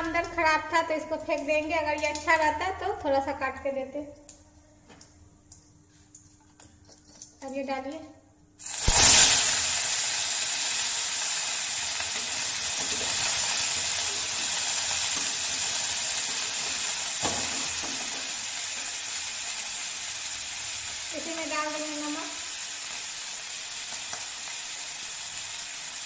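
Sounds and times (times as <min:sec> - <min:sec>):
vegetables sizzling in hot oil: 0:08.6 - 0:26.0.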